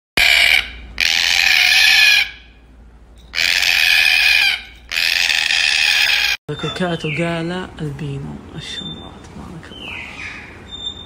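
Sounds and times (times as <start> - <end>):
cockatoo screeching: 0.2 - 2.6, 3.3 - 7.1.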